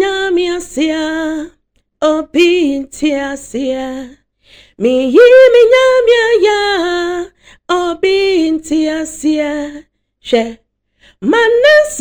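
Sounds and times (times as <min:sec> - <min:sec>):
woman singing gospel: 0:00.0 - 0:04.2, 0:04.8 - 0:10.6, 0:11.2 - 0:12.0.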